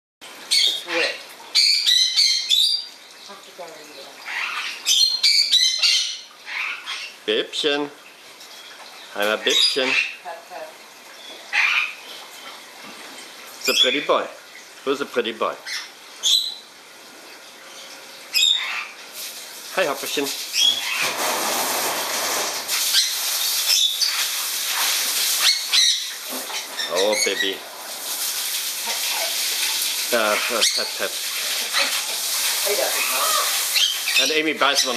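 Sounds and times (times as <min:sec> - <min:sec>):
parrot screeching: 0:00.5 - 0:02.9, 0:04.3 - 0:07.2, 0:11.5 - 0:12.0, 0:18.3 - 0:19.0, 0:20.6 - 0:21.1, 0:25.4 - 0:27.6, 0:30.2 - 0:31.0, 0:32.8 - 0:34.9
steady hissing noise: 0:19.0 - 0:34.9.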